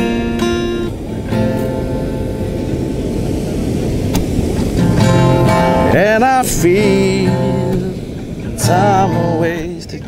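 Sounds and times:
acoustic guitar chord: 0.0s - 10.0s.

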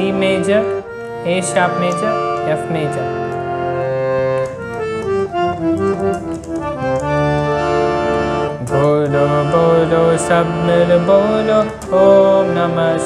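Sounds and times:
harmonium melody: 0.0s - 13.0s.

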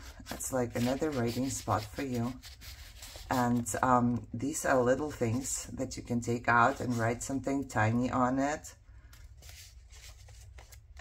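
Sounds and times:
paper rustling: 0.0s - 4.2s, 9.0s - 11.0s.

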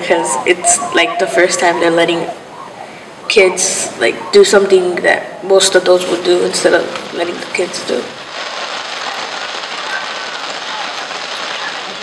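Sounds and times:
heavy rain on wet street: 5.6s - 12.0s.

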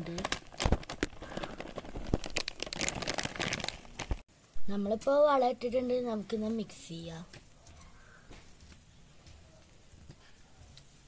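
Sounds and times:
plastic packet crinkling: 0.0s - 4.2s.

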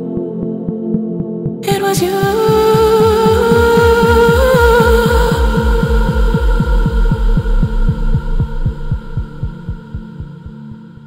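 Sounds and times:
synth drone: 0.0s - 11.0s
low bass thuds: 2.3s - 10.6s.

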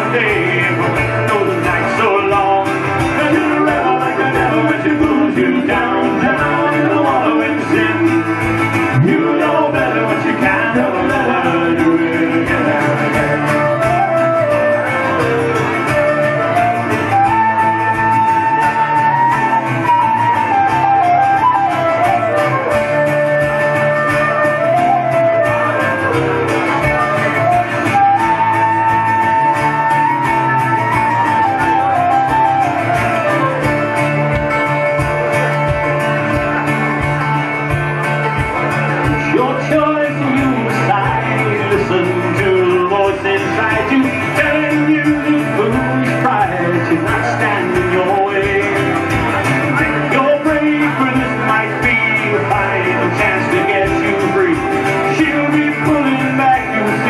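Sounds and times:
fiddle: 0.0s - 57.0s
flute melody: 0.0s - 57.0s
mandolin: 0.0s - 57.0s
strummed acoustic guitar: 0.0s - 57.0s.

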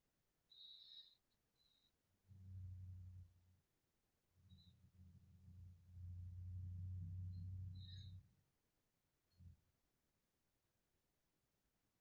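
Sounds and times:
faint low hum: 0.5s - 10.0s.

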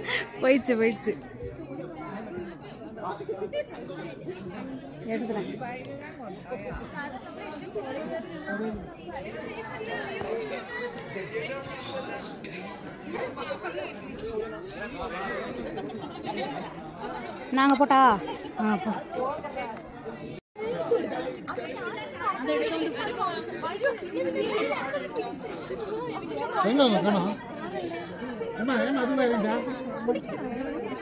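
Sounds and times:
distant chatter of people: 0.0s - 31.0s.

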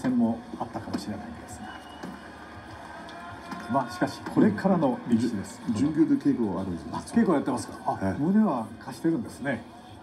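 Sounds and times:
faint arena background: 0.0s - 10.0s
man commentating on tv: 0.0s - 10.0s.

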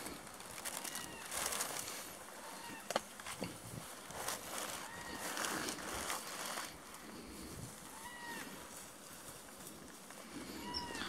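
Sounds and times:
faint animal calls: 0.0s - 11.0s.

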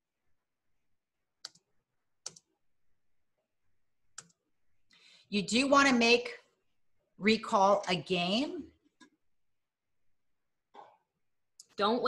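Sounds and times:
computer mouse clicks: 1.4s - 2.5s, 4.1s - 4.4s.

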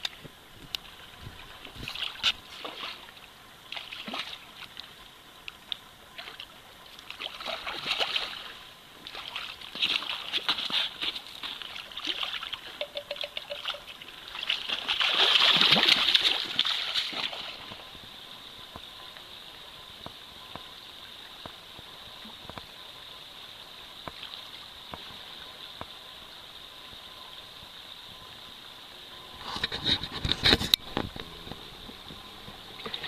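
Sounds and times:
splashing in shallow water: 0.0s - 5.0s, 6.1s - 18.2s
creek trickling over gravel: 0.0s - 17.9s.

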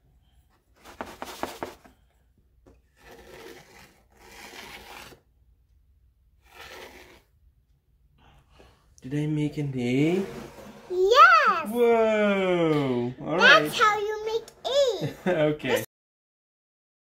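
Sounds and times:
stick scraping through sand: 2.8s - 5.3s, 6.4s - 7.4s.

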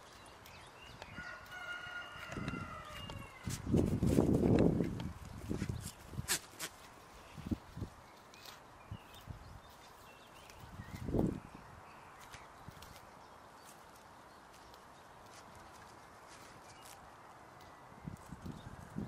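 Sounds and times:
goat hooves thudding on ground: 0.9s - 7.0s.

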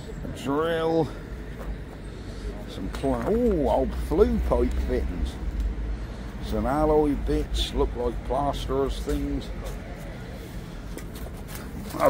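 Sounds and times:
steady low rumble: 1.0s - 11.0s.

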